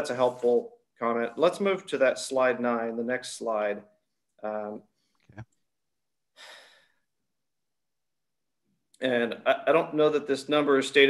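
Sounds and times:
man breathing: 6.3 - 7.1.

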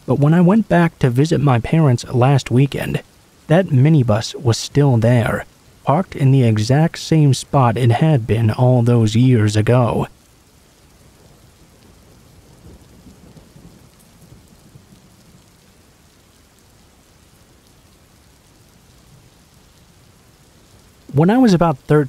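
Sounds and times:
faint steady rain: 0.0 - 22.0
distant thunder rumble: 11.8 - 15.2.

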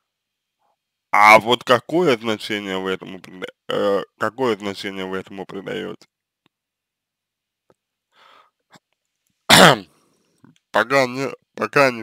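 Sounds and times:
faint breath in: 8.1 - 8.6
man coughing: 9.5 - 9.9.

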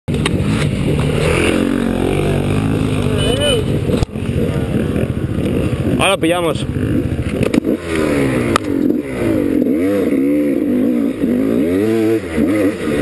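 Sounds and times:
motorcycle engine running: 0.1 - 13.0.

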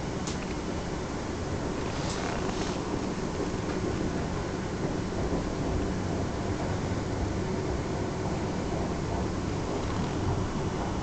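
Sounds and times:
train wheels rumbling: 0.0 - 11.0.

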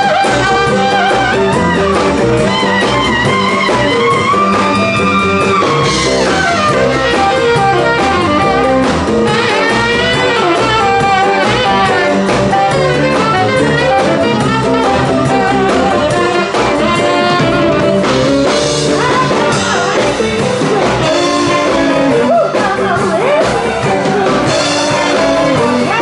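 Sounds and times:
drum kit: 0.0 - 26.0
electric guitar: 0.0 - 26.0
saxophone solo: 0.0 - 26.0.

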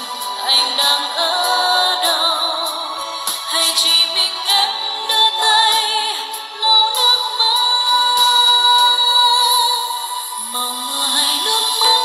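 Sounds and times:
pop backing track: 0.0 - 12.0
woman singing into a microphone: 0.0 - 12.0.

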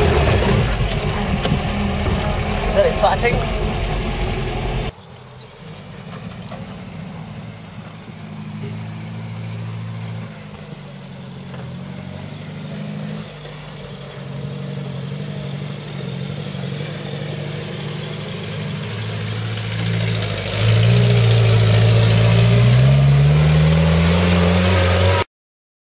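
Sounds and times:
off-road vehicle engine revving: 0.0 - 25.3.

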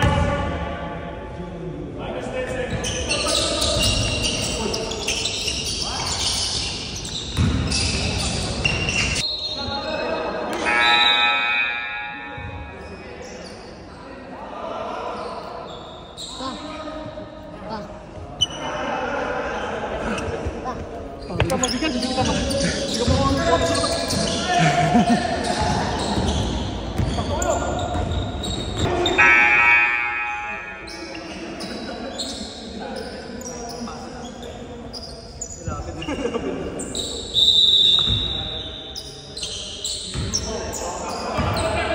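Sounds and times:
players' voices: 0.0 - 41.9
sneaker squeaks: 2.5 - 11.7, 12.3 - 14.1, 15.0 - 17.1, 18.2 - 18.8, 20.0 - 41.9
basketball bouncing: 7.4 - 7.8
loud held pitched tone: 10.6 - 13.4, 28.8 - 31.9.

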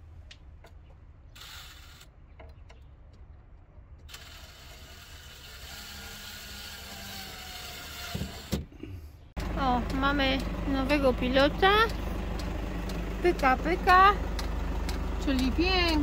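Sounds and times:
cordless drill driving a fastener: 1.4 - 2.1, 4.1 - 8.6.

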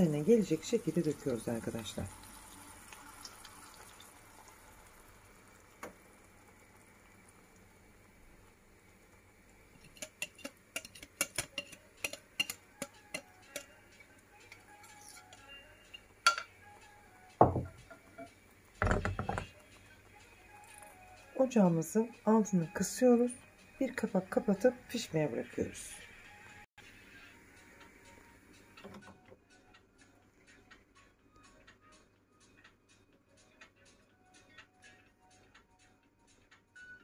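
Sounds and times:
faint sizzle of hot oil: 0.0 - 26.3
utensil clicking against bowl: 9.8 - 13.7
kitchenware knocks: 17.4 - 18.0, 18.8 - 19.5.

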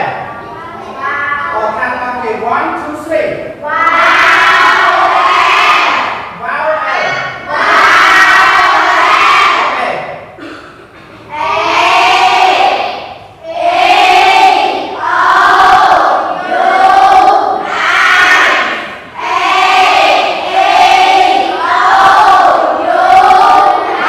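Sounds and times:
children reciting in unison: 3.6 - 6.3, 7.0 - 24.0.

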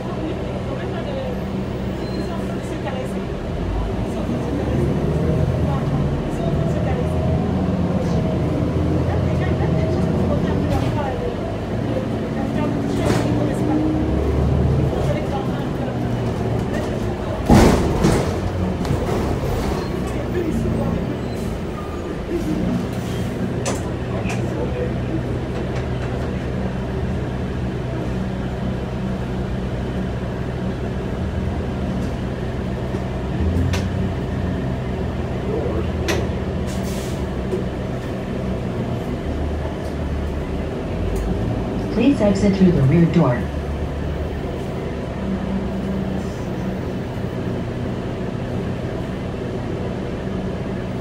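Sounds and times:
bus engine and transmission running: 0.0 - 51.0.

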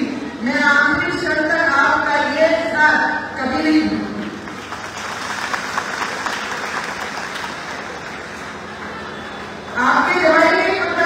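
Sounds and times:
audience applauding: 4.4 - 9.7.

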